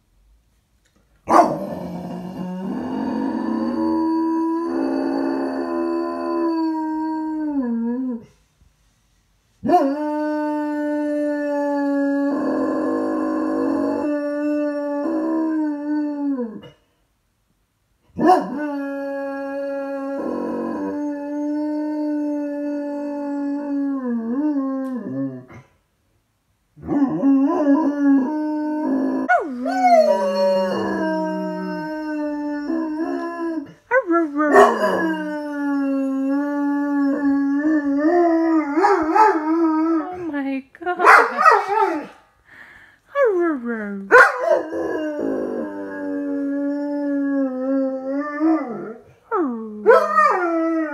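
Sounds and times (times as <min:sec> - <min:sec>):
dog howling: 0:01.3 - 0:08.3, 0:09.6 - 0:16.7, 0:18.2 - 0:25.5, 0:26.8 - 0:40.3, 0:41.1 - 0:42.2, 0:44.1 - 0:50.9.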